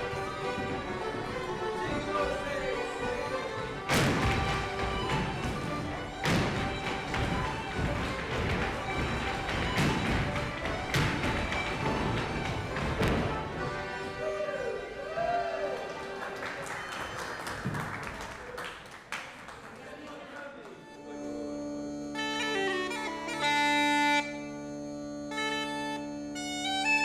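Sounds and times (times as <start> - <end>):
dance shoes stamping on floor: 0.0 - 14.0
irish traditional music: 0.0 - 17.0, 20.6 - 27.0.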